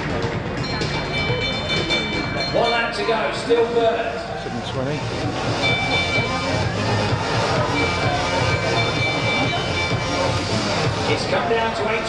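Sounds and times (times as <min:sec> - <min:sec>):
indistinct voices: 0:00.0 - 0:12.0
stadium crowd noise: 0:00.0 - 0:12.0
lap bell ringing: 0:00.6 - 0:03.4, 0:05.5 - 0:11.1.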